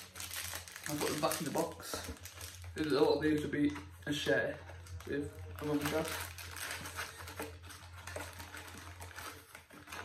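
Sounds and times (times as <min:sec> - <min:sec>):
plastic wrappers crinkling: 0:00.0 - 0:10.0.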